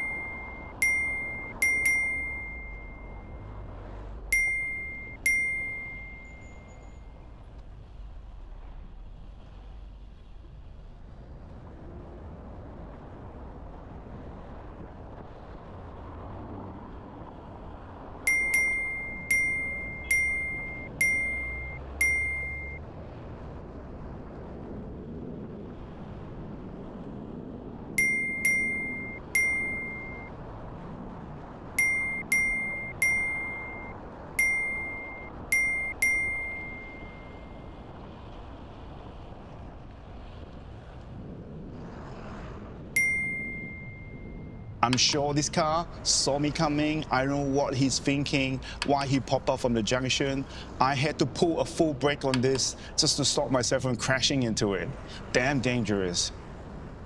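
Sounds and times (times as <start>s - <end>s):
bright ding chime: 0.0s - 3.4s, 4.3s - 6.8s, 18.3s - 22.8s, 28.0s - 30.3s, 31.8s - 37.6s, 43.0s - 44.5s
street traffic: 0.0s - 57.0s
wind noise: 0.0s - 57.0s.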